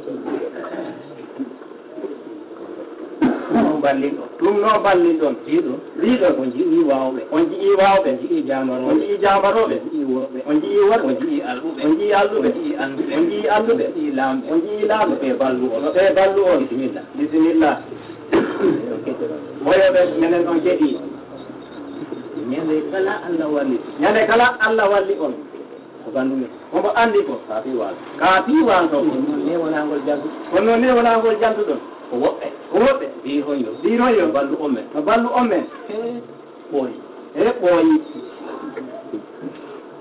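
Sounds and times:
man speaking: 3.3s - 39.6s.

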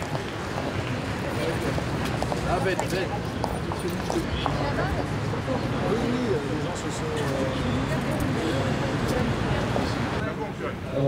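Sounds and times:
shoes clicking on stone paving: 0.0s - 4.7s.

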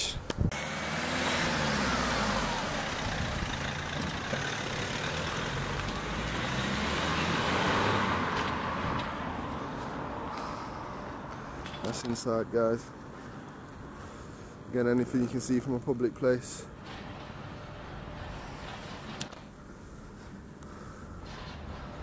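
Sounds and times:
car pulling away: 0.5s - 10.7s.

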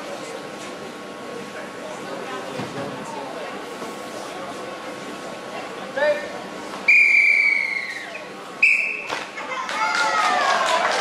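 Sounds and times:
referee's whistle blasts: 6.9s - 9.1s.

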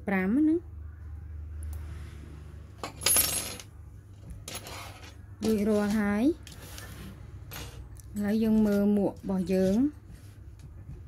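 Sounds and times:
hook scraping on table: 4.5s - 5.2s.

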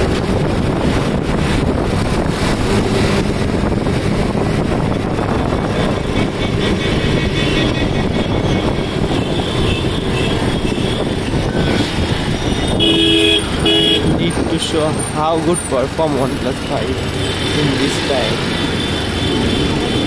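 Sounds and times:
vehicle road noise: 0.0s - 20.0s
vehicle horn honking: 9.0s - 11.1s, 12.6s - 14.2s.

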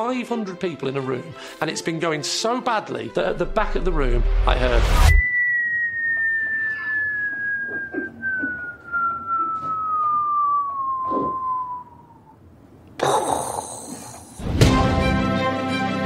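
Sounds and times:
long falling whistle: 3.6s - 12.4s.

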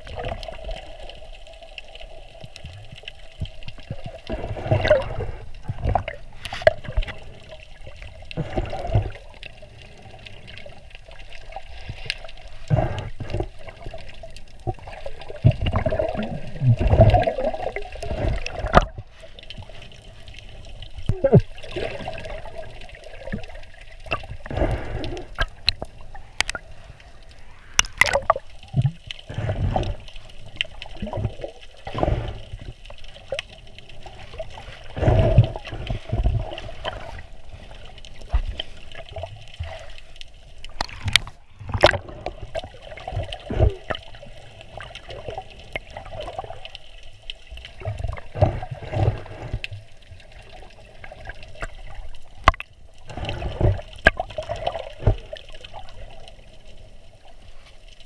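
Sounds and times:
bubbles: 0.0s - 57.4s
muffled underwater water sloshing: 0.0s - 58.0s.

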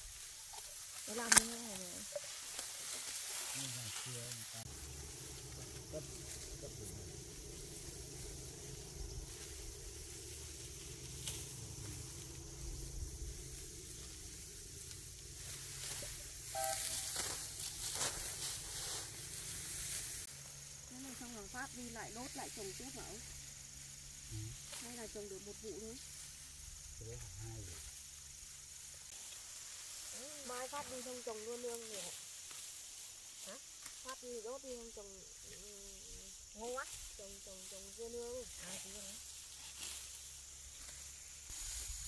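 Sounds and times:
dry stalks rustling: 0.0s - 27.0s, 27.7s - 42.0s
steady low hum: 4.6s - 17.2s.

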